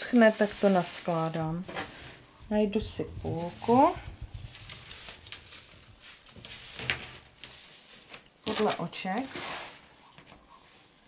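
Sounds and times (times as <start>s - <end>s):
stiff lace rustling: 0.0s - 11.0s.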